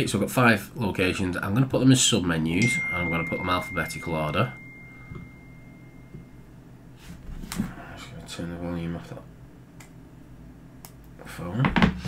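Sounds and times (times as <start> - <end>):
phone alert tone ringing: 2.6 - 6.4.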